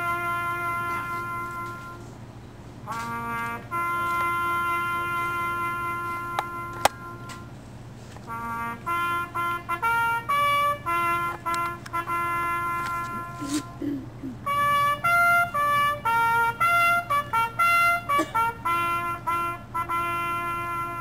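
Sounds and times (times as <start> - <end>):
solo trumpet bugle call: 0.0 - 2.2, 2.8 - 13.8, 14.4 - 21.0.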